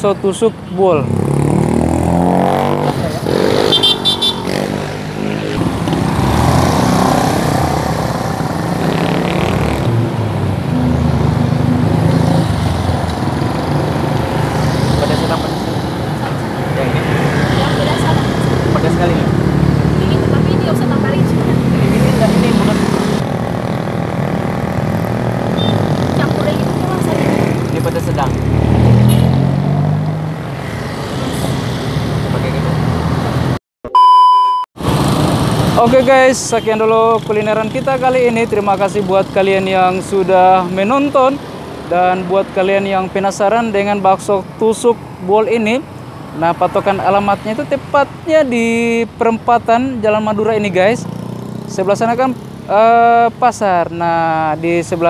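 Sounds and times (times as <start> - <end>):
vehicle engines passing: 0.0 - 33.6, 34.8 - 55.0
people talking indistinctly: 14.8 - 23.2.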